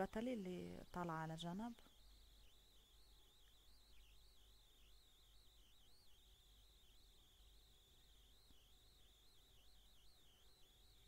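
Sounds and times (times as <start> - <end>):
thin high-pitched whine: 0.0 - 11.0.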